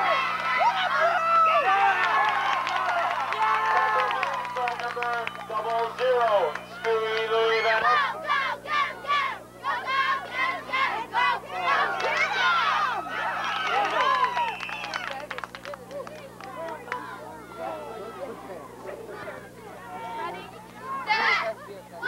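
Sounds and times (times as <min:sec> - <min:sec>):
crowd shouting and cheering: 0:00.0 - 0:15.2, 0:16.3 - 0:22.0
steady low hum: 0:00.0 - 0:22.0.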